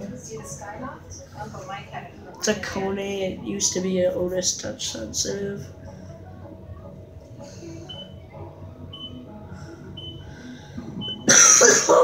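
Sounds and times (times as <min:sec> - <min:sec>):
elevator car humming: 0:02.6 - 0:12.0
man coughing hard: 0:11.3 - 0:12.0.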